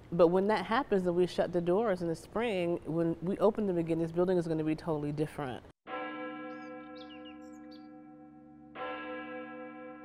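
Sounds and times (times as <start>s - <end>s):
church bell ringing: 5.9s - 10.0s
bird chirps: 6.5s - 8.0s.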